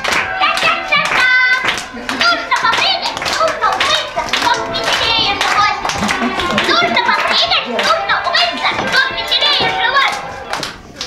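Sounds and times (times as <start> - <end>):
faint music: 0.0 - 11.0
young children chattering: 0.0 - 11.0.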